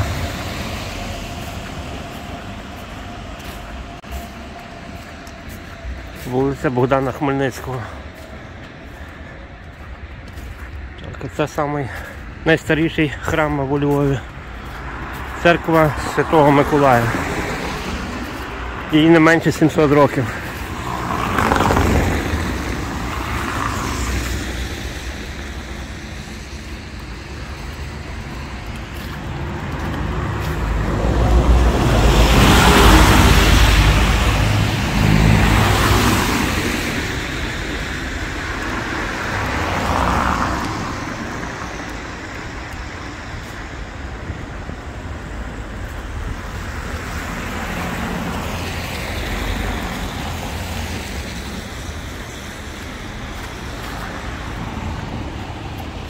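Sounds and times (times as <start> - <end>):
car passing with deep rumble: 0.0 - 10.6, 11.3 - 56.0
tyres hissing on wet stones: 10.8 - 34.4, 35.0 - 43.8.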